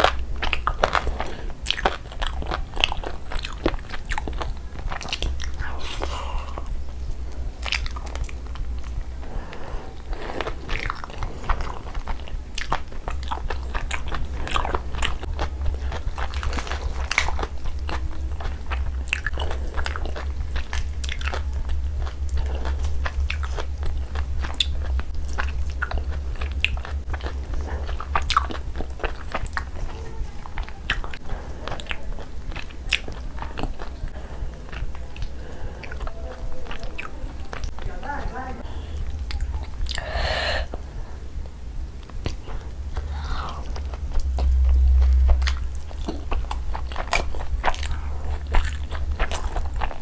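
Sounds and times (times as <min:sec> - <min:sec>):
chewing and crunching food: 0:00.0 - 0:50.0
steady low hum: 0:00.0 - 0:50.0.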